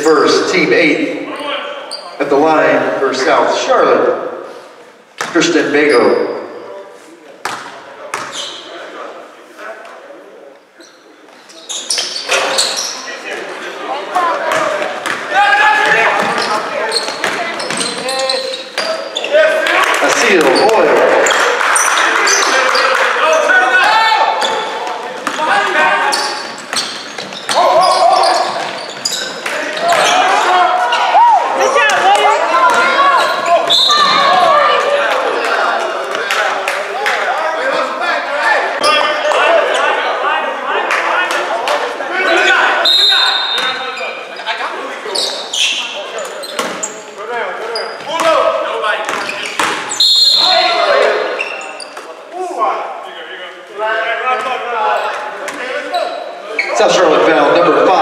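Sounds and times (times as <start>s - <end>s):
people shouting in gym: 14.1s - 17.6s, 22.1s - 26.3s, 27.5s - 43.9s.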